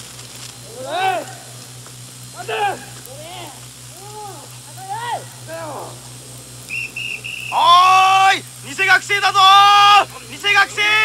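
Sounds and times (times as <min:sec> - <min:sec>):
low electrical hum: 0:00.0 - 0:11.0
high whistle-like tone: 0:06.7 - 0:07.9.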